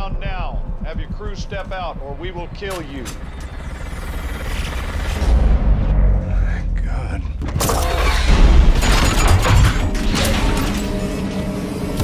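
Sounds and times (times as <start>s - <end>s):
deep rumble: 0.0s - 9.2s.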